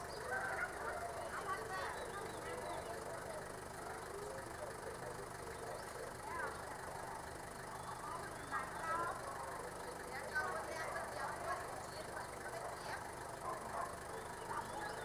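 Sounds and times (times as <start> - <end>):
distant voices talking: 0.0 - 15.0.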